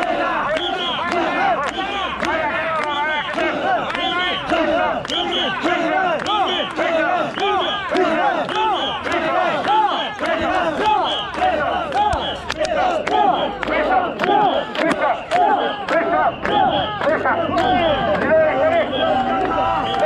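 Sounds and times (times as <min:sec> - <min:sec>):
crowd of men shouting a chant: 0:00.0 - 0:20.0.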